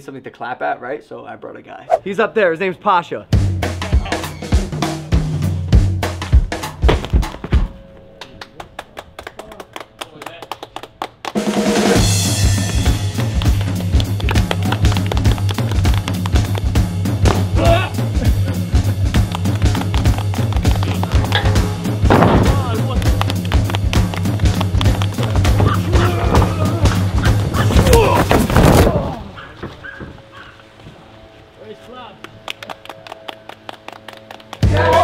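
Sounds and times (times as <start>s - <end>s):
music with drum beat: 11.4s - 27.7s.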